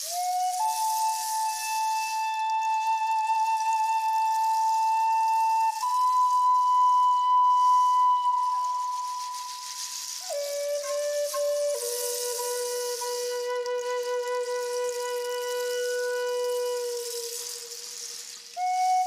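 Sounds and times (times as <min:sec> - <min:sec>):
wooden flute melody: 0:00.0 - 0:19.0.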